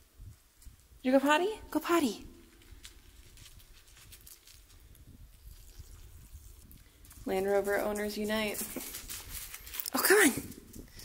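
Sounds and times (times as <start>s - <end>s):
footsteps on gravel: 2.3s - 10.7s.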